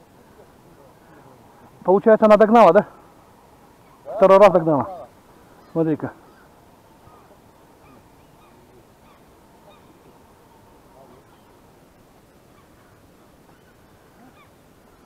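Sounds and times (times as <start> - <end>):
distant birds chirping: 0.0 - 15.0
riverside ambience: 0.0 - 15.0.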